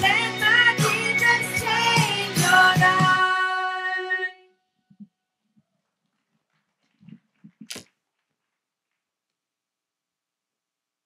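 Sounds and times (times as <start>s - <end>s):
microphones thumping: 6.8s - 8.0s.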